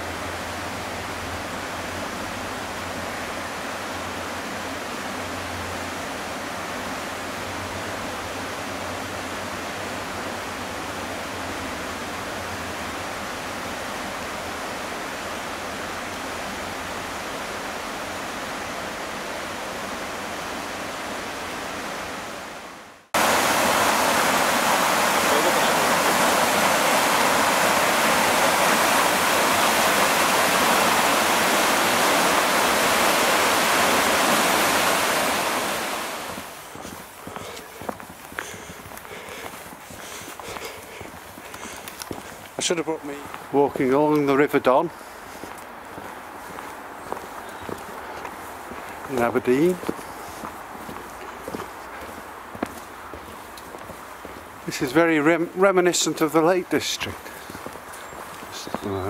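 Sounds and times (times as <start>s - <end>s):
river rushing over rapids: 0.0s - 59.0s.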